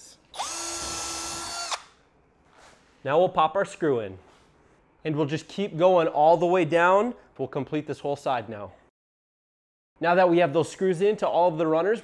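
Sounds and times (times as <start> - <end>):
cordless drill whirring: 0.3 - 2.0.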